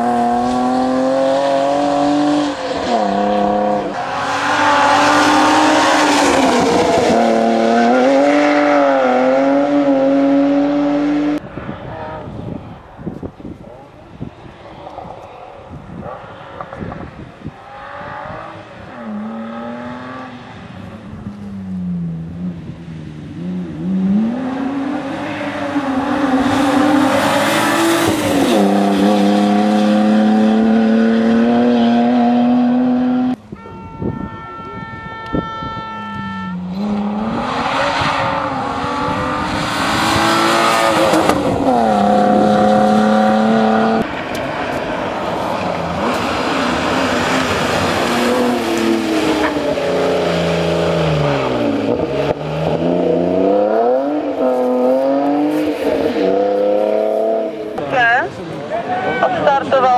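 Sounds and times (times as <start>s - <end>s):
car engine revving hard: 0.0s - 11.4s, 17.6s - 20.5s, 23.4s - 33.4s, 36.6s - 44.2s, 45.6s - 57.8s.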